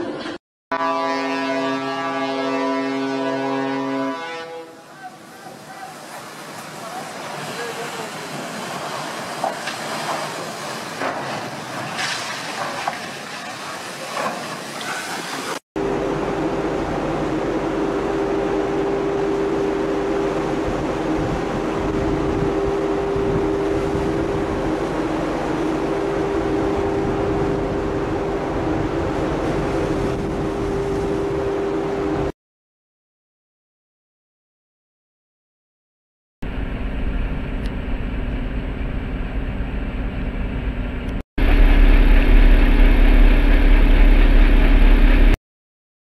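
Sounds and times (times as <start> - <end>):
rushing water: 4.7 - 15.6, 17.9 - 31.6
propeller churning water: 4.7 - 32.3
droning hum: 36.5 - 45.4.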